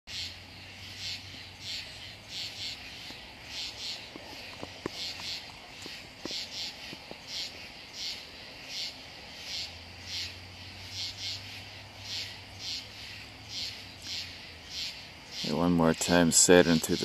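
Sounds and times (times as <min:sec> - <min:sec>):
night insects chirping: 0:00.1 - 0:17.0.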